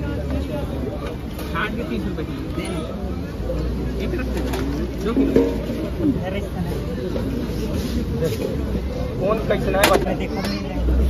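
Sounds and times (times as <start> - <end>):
indistinct voices and chatter: 0.0 - 11.0.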